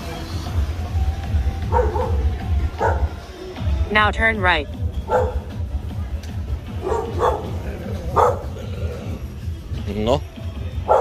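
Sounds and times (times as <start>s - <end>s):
dogs barking: 1.6s - 3.3s, 5.0s - 5.6s, 6.7s - 9.4s, 10.8s - 11.0s.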